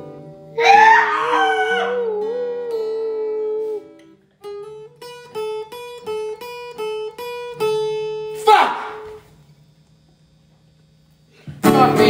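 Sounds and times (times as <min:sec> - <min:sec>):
guitar picking two-note figure: 0:01.6 - 0:09.3.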